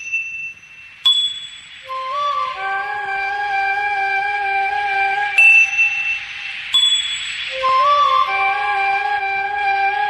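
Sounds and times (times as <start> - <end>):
bell-like chimes: 0.0 - 2.1, 5.4 - 7.7
flute melody: 1.8 - 10.0.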